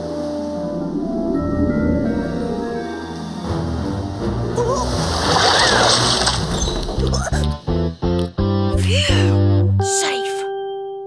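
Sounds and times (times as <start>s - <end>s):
background music: 0.0s - 11.0s
cartoon water splash: 4.6s - 7.4s.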